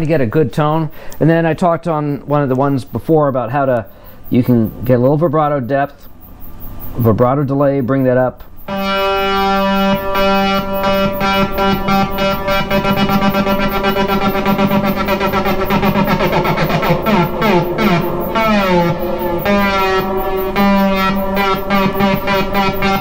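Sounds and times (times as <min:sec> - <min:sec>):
synthesizer sustained note: 0:08.7 - 0:23.0.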